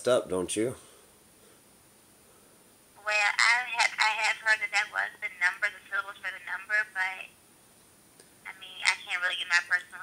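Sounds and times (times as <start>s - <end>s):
woman speaking over telephone: 3.0s - 7.4s, 8.5s - 10.0s.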